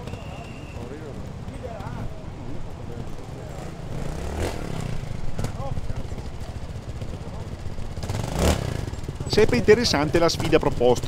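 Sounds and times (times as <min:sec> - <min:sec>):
motorcycle engine at low revs: 0:03.0 - 0:11.0.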